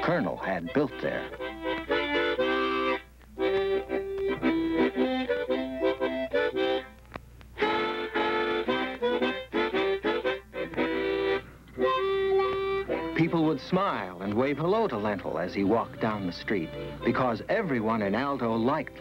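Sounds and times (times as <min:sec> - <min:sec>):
harmonica playing chords: 0:00.0 - 0:19.0.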